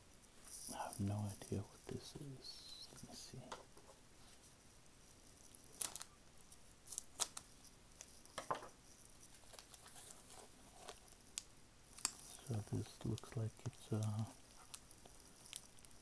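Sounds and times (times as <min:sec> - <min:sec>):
tape ripping: 0:05.7 - 0:06.1, 0:06.9 - 0:08.1.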